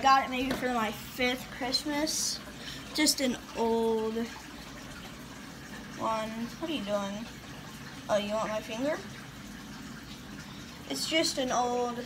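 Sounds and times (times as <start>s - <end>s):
aquarium filter water splashing: 0.0s - 12.0s.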